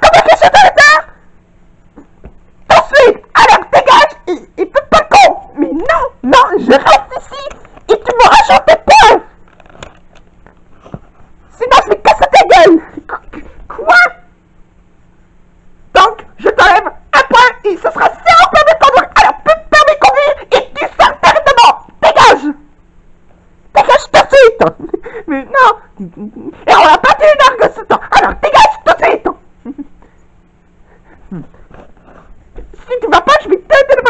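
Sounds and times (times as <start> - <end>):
high-pitched whiny vocal sounds: 0.0 - 1.2, 2.7 - 9.3, 16.0 - 22.6, 23.7 - 29.9, 31.2 - 34.0
faint low hum: 0.0 - 34.0
person speaking: 2.6 - 9.7, 11.5 - 14.3, 15.9 - 22.7, 23.7 - 30.0, 31.2 - 34.0.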